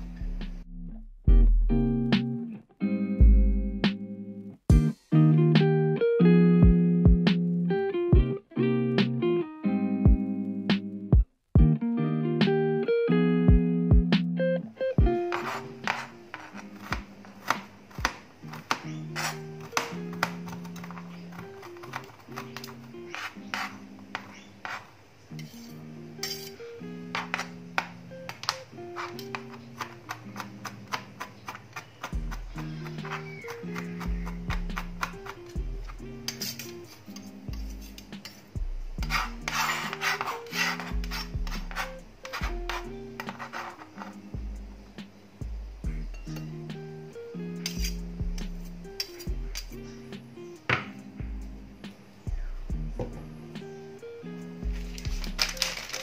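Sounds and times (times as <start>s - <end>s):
background music with plucked notes: 0.0s - 24.7s, 25.3s - 56.0s
knife chopping on plastic board: 15.3s - 24.8s, 27.2s - 35.6s.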